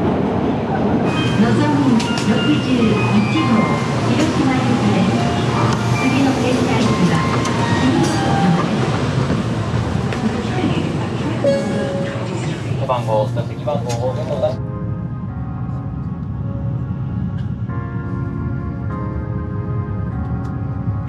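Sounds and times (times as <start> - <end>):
stopped train humming: 0.0 - 14.6
public address announcement: 0.6 - 14.6
station arrival melody chiming: 11.4 - 12.8.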